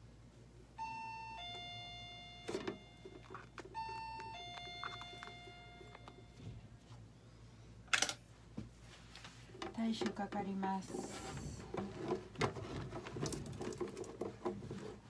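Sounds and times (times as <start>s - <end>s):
electronic two-tone chime: 0.8s - 6.4s.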